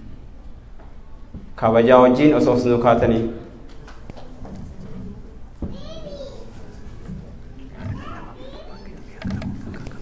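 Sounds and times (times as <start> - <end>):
murmur of background voices: 2.9 - 10.0.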